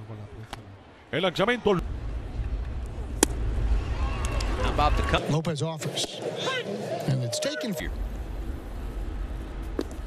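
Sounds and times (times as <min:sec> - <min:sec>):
low rumble and hiss: 0:00.0 - 0:05.3, 0:07.8 - 0:10.0.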